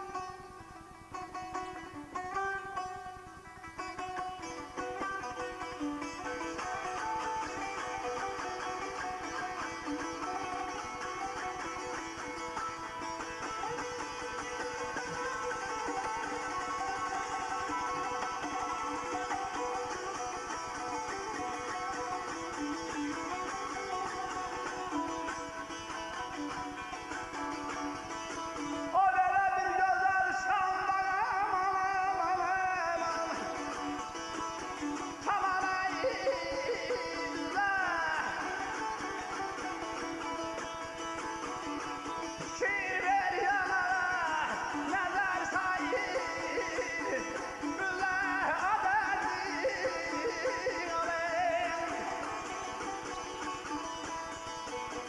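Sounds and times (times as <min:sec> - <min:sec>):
plucked saz: 0:00.0 - 0:55.0
man singing: 0:28.6 - 0:34.2, 0:35.2 - 0:39.4, 0:42.4 - 0:52.9.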